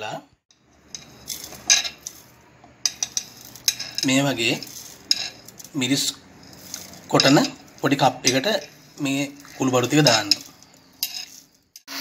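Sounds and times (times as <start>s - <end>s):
metal utensil clinking on pot: 0.8s - 11.6s.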